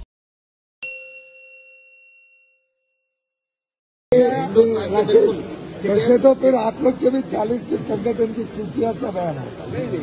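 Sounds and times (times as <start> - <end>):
bell-like chime ding: 0.8 - 3.6.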